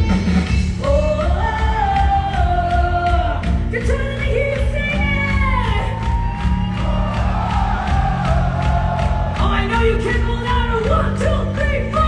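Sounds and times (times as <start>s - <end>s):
concert crowd: 0.0s - 12.0s
rock band playing live: 0.0s - 12.0s.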